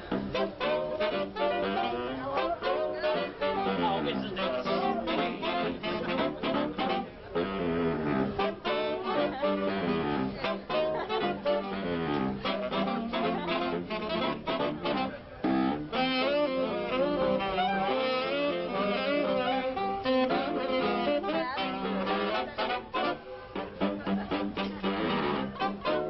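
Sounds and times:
saxophone ensemble playing jazz: 0.0 - 26.0.

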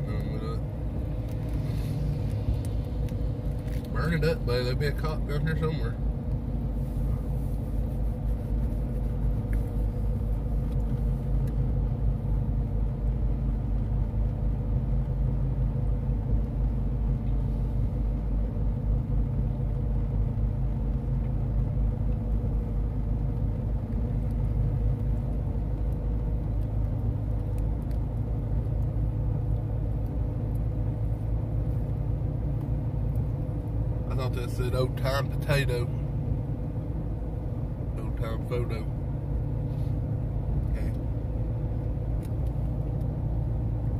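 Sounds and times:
car interior engine and road rumble: 0.0 - 43.9.

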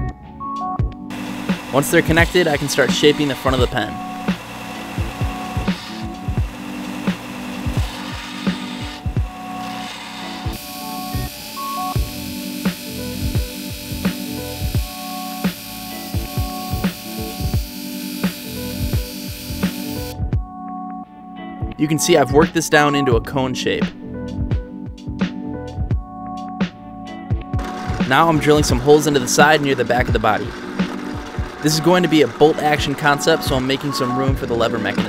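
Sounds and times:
background music with steady beat: 0.0 - 35.0
belt sander grinding metal: 1.1 - 20.2.

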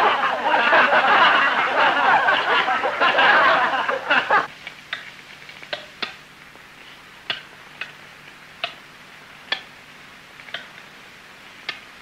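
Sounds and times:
faint steady hum: 0.0 - 12.0
sharp clicks: 4.6 - 6.6, 7.2 - 8.8.

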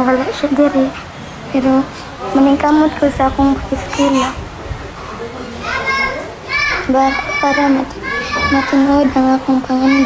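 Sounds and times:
girl speaking: 5.9 - 10.0.

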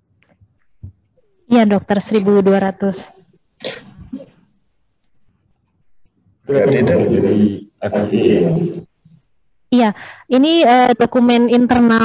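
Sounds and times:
person coughing: 3.6 - 4.4.

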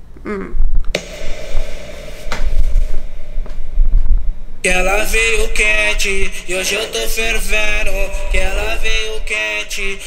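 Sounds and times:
steady held tone: 0.9 - 10.0.

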